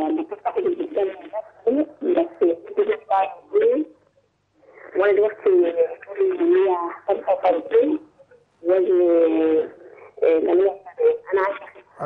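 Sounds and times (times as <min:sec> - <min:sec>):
woman talking over a phone line: 0:00.0 - 0:03.9, 0:04.8 - 0:08.0, 0:08.6 - 0:11.8.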